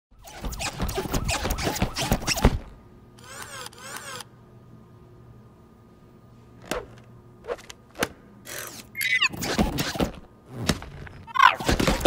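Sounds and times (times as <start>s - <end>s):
inflatable vinyl squeaks: 0.2s - 2.7s, 9.0s - 12.0s
faint steady hum: 2.2s - 9.4s.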